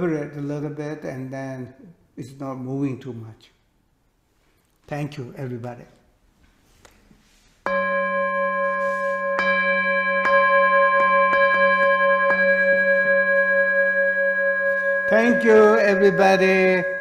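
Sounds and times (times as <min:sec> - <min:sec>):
singing bowl ringing: 0:07.7 - 0:17.0.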